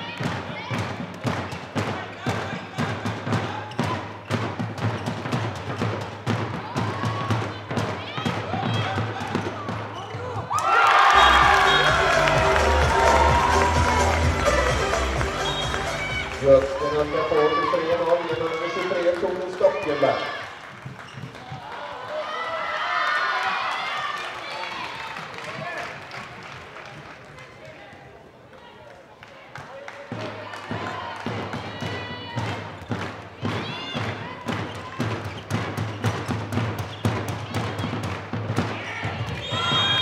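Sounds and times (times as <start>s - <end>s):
handball bouncing on hall floor: 0.0s - 21.8s, 29.3s - 40.0s
crowd cheering: 6.5s - 28.0s, 28.6s - 35.4s, 37.1s - 40.0s
music with deep bass: 11.2s - 16.7s.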